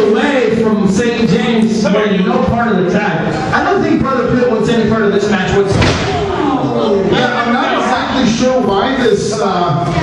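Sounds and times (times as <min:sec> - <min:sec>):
voices talking: 0:00.0 - 0:10.0
body slamming onto wrestling ring: 0:05.7 - 0:06.2.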